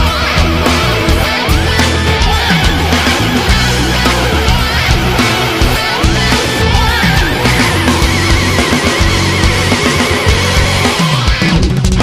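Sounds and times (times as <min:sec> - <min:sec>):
distorted electric guitar: 0:00.0 - 0:12.0
drums: 0:00.0 - 0:12.0
heavy rock band: 0:00.0 - 0:12.0.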